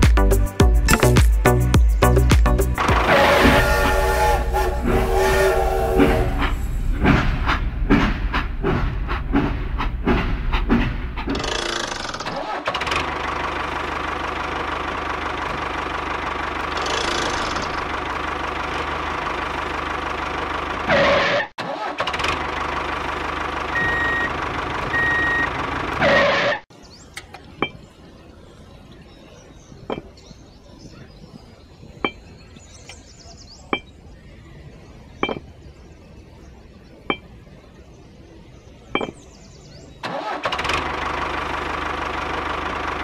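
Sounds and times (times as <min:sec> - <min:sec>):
clicking and rattling: 0:10.1 - 0:13.2.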